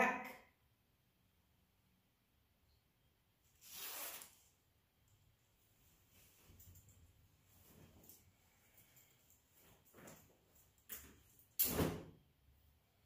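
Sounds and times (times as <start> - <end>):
jacket cloth rustling: 3.6 - 4.6, 5.4 - 12.0.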